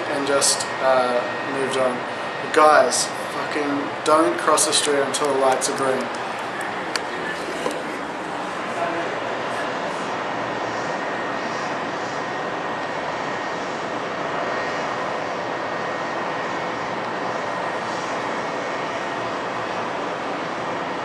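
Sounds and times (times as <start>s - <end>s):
city noise roar: 0.0s - 21.0s
thin high whine: 0.0s - 21.0s.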